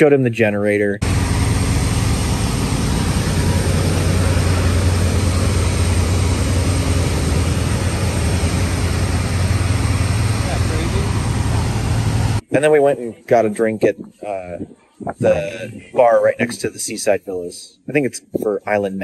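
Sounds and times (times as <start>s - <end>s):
generators droning with low hum: 1.0s - 18.8s.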